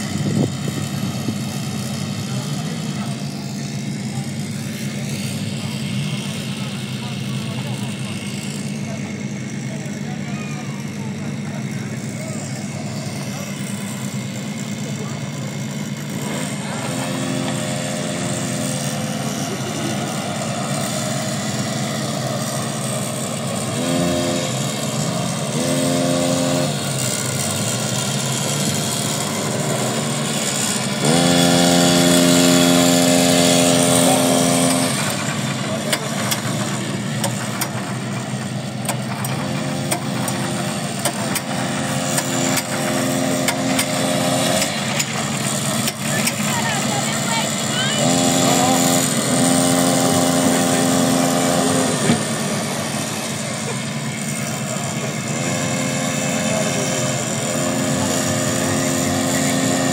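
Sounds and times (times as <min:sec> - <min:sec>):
small engine revving: 0:00.0 - 0:59.9.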